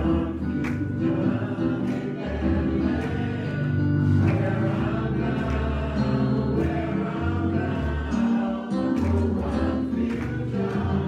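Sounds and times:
choir singing held notes: 0.0 - 11.0
organ accompaniment: 0.0 - 11.0.

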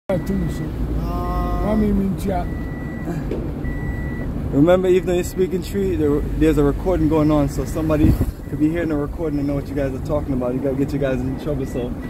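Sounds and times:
vehicle rumble: 0.1 - 12.0
vehicle warning beeper: 0.1 - 12.0.

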